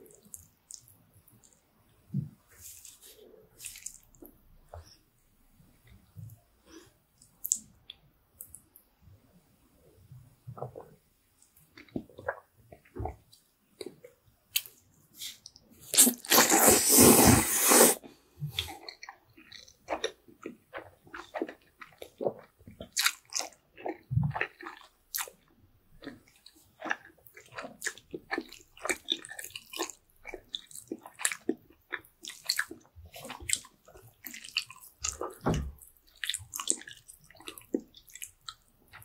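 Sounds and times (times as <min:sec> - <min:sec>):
person slurping noodles: 0:15.9 - 0:18.0.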